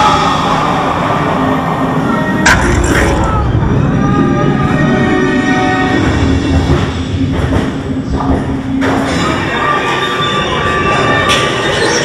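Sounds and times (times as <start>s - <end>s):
coaster car rumbling on steel track: 0.0s - 12.0s.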